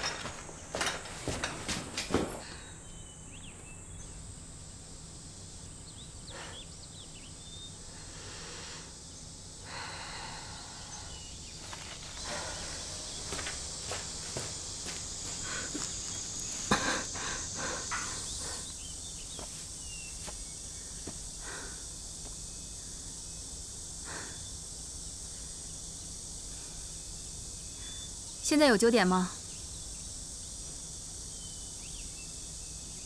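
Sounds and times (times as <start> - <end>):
high steady hiss: 0.0 - 33.0
faint chirps: 5.5 - 30.2
footsteps on dirt and grass: 11.5 - 17.4, 19.3 - 21.2.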